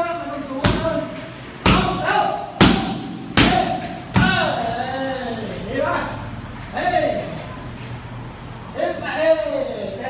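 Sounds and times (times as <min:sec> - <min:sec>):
strikes smacking on pads: 0:00.6 - 0:04.5.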